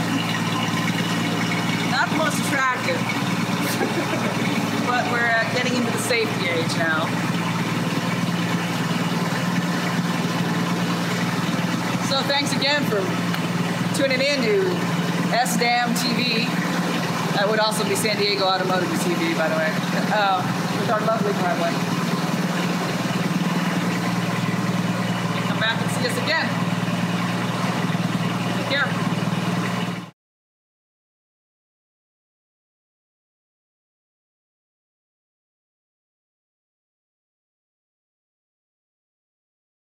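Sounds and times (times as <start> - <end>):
car engine idling: 0.0 - 30.1.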